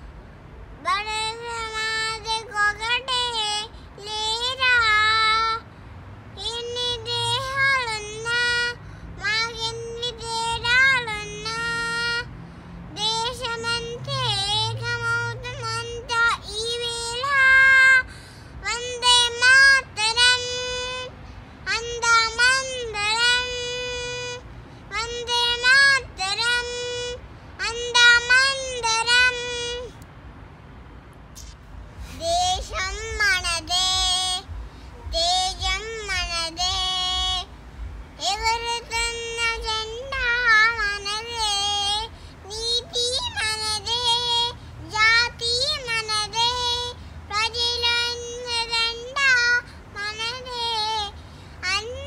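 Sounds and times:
girl singing unaccompanied: 0:00.0 - 0:30.0, 0:31.3 - 0:52.0.

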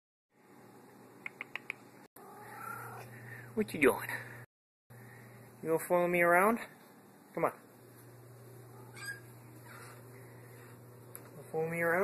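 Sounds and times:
cat chirping: 0:08.8 - 0:09.9.

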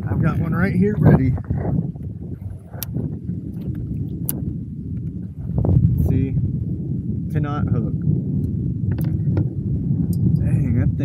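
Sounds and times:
water lapping at kayak hull: 0:00.0 - 0:05.8
wind rumbling on microphone: 0:00.0 - 0:11.0.

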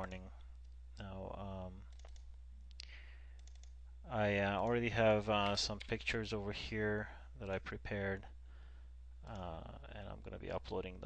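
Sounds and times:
low steady hum: 0:00.0 - 0:11.0
computer mouse clicks: 0:01.8 - 0:03.8.

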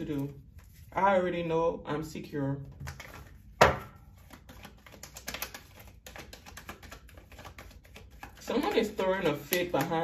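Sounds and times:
cards being shuffled: 0:00.0 - 0:01.0, 0:02.7 - 0:10.0.

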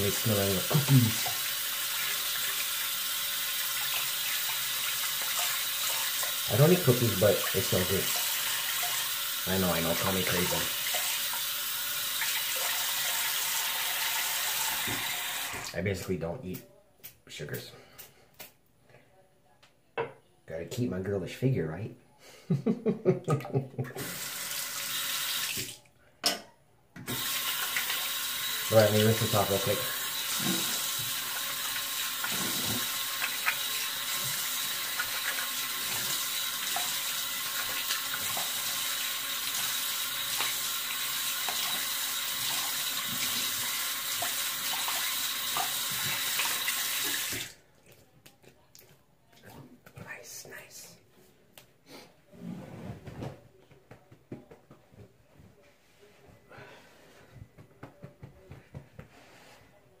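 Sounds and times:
tap running with splashing: 0:27.1 - 0:48.0.

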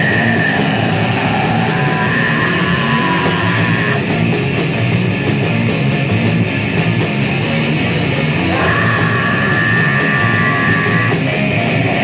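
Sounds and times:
distorted guitar: 0:00.0 - 0:12.0
hardcore punk band playing: 0:00.0 - 0:12.0.

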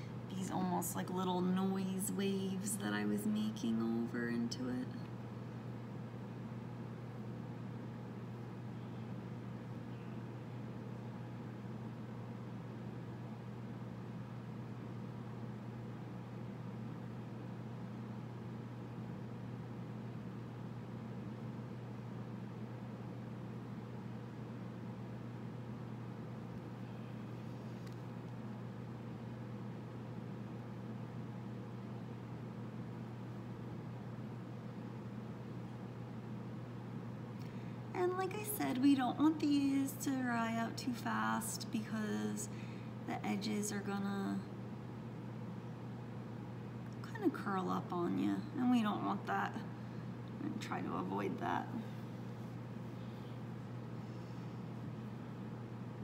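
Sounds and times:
low hum with faint hiss: 0:00.0 - 0:56.0.

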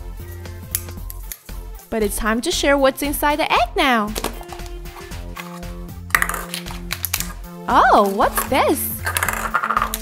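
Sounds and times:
light background music: 0:00.0 - 0:10.0
plastic toy egg clicking apart: 0:06.1 - 0:07.4, 0:08.4 - 0:10.0.

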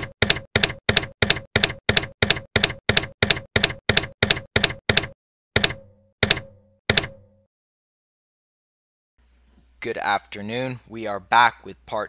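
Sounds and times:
typewriter key strikes: 0:00.0 - 0:07.3.

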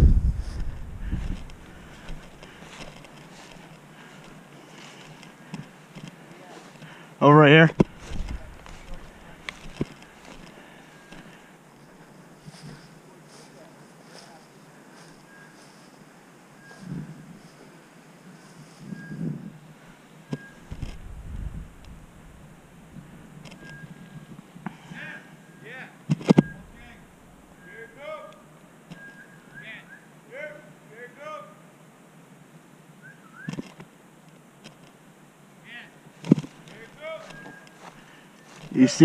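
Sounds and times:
wind gust on microphone: 0:00.0 - 0:02.0, 0:20.6 - 0:23.3
footsteps through grass and brush: 0:00.1 - 0:07.0, 0:07.8 - 0:19.0, 0:36.2 - 0:39.0.

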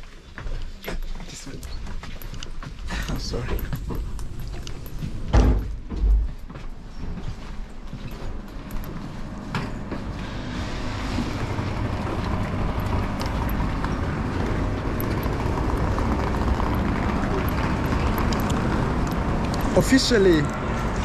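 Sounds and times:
station rumble and hiss: 0:09.6 - 0:21.0.

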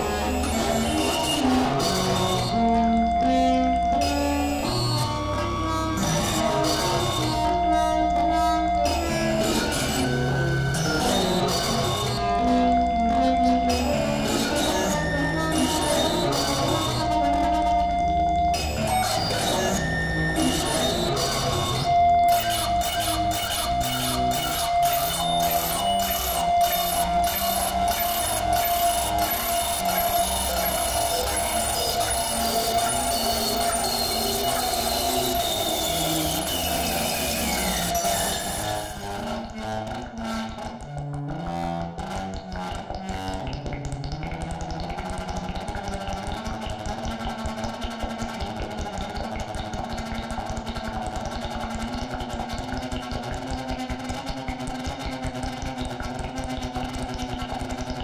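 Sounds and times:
electronic music rough pulses: 0:00.0 - 0:58.0
steady held synth tone: 0:21.7 - 0:39.0.

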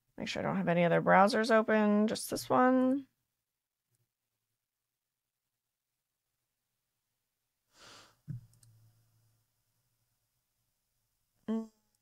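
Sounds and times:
breathy exhale into microphone: 0:07.7 - 0:08.2.

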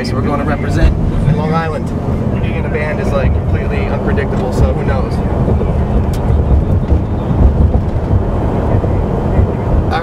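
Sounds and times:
engine and road noise in car: 0:00.0 - 0:10.0.

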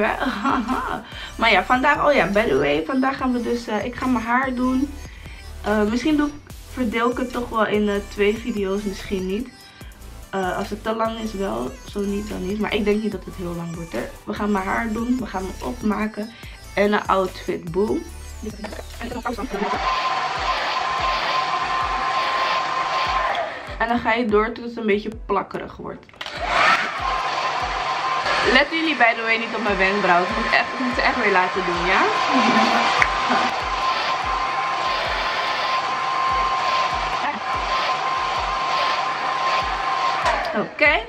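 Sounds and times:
background music with low beat: 0:00.0 - 0:22.5, 0:23.1 - 0:25.8, 0:29.7 - 0:41.0
hair dryer blowing with whine: 0:19.4 - 0:23.8, 0:26.2 - 0:40.6.

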